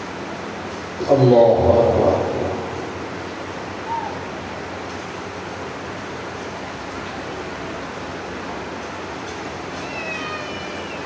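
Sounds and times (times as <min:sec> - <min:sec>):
steady background hiss: 0:00.0 - 0:11.0
high-pitched meow-like cry: 0:03.8 - 0:04.2, 0:09.7 - 0:11.0.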